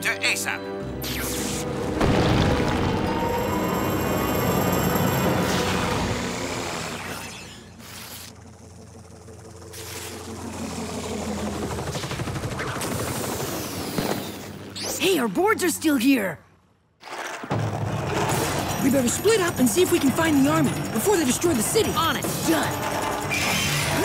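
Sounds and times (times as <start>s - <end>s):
rumbling crash effects: 2.0s - 3.5s.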